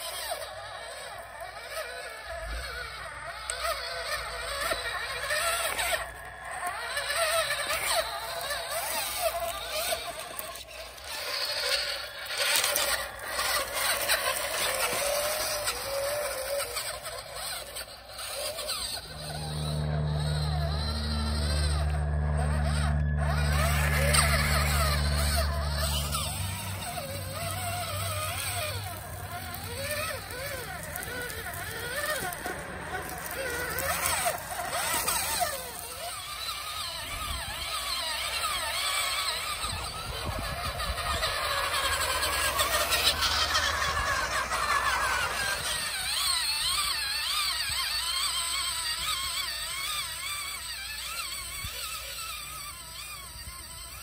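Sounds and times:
toy truck motor whining: 0.0 - 54.0.

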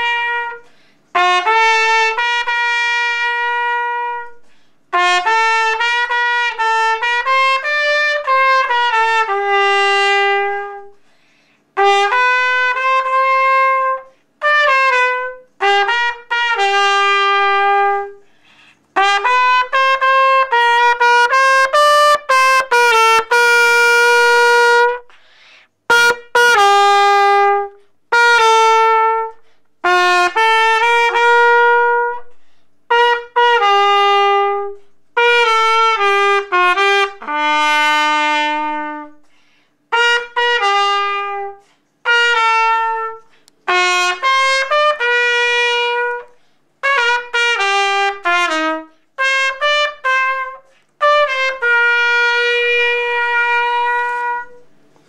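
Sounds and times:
slow trumpet melody: 0.0 - 55.0.

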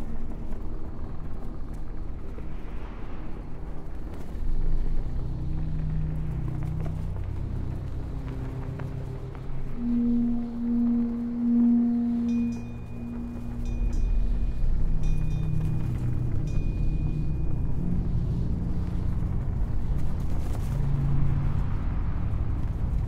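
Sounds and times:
low rumbling drone: 0.0 - 23.0
thin high tone: 9.8 - 18.1
bell-like tone: 9.8 - 18.4.

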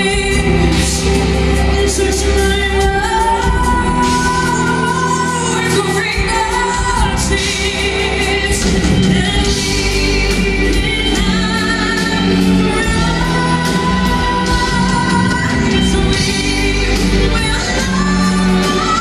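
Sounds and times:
electric guitars: 0.0 - 19.0
live rock band: 0.0 - 19.0
person singing: 0.0 - 19.0.

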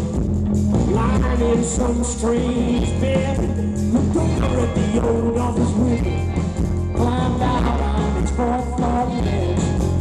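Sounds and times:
bass notes: 0.0 - 10.0
man singing: 0.8 - 10.0.

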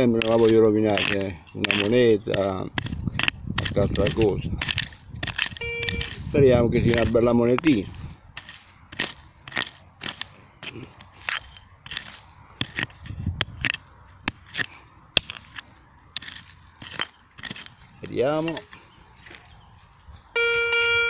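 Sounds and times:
hand pick chopping into soil: 0.0 - 15.6.

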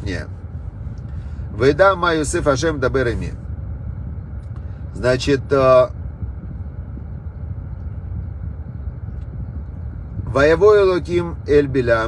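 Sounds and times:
car cabin rumble: 0.0 - 12.0
engine idling hum: 0.0 - 12.0.

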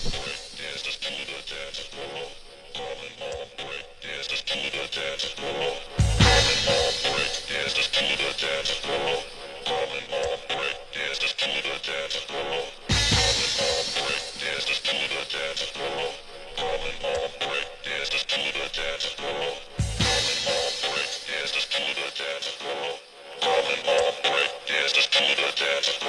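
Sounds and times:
breakbeat dance music: 0.0 - 1.2, 5.4 - 10.7, 12.8 - 17.8, 18.4 - 21.9
deep bass hit: 6.0 - 6.8, 12.9 - 13.6.

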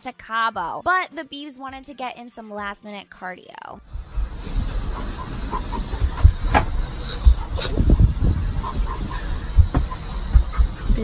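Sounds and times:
jet cabin low rumble: 3.9 - 11.0
knocks and thumps of movement: 4.0 - 11.0.

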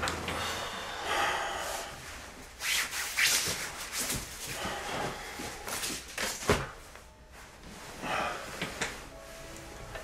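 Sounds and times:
rubbing scraping swishes: 2.0 - 4.5.

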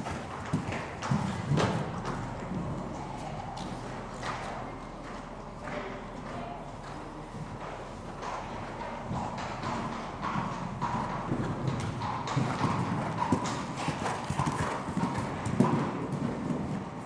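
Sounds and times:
horse hoofbeats on sand: 0.0 - 17.0.

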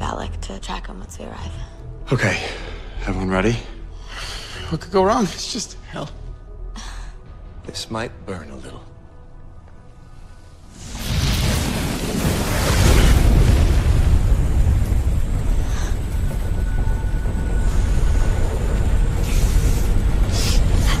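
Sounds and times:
music: 0.0 - 21.0
rumbling fire burst: 10.7 - 21.0.

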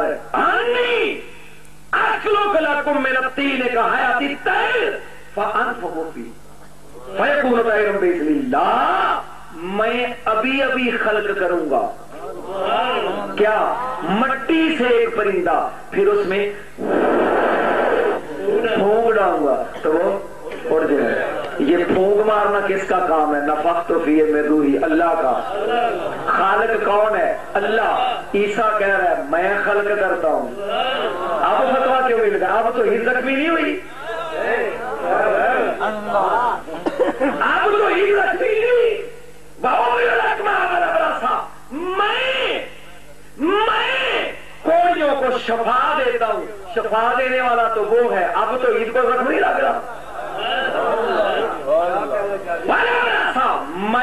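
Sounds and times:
man speaking: 2.0 - 16.7, 18.2 - 42.6
man blowing into microphone: 16.8 - 18.3.

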